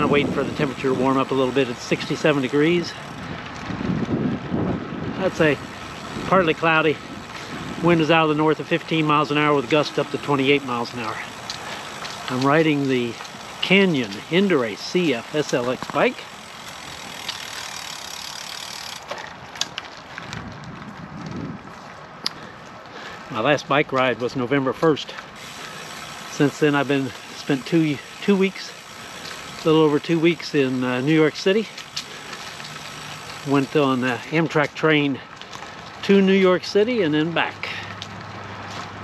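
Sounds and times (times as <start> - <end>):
wind buffeting microphone: 0.0 - 12.4, 20.0 - 22.2
wind and tyre noise: 0.0 - 39.0.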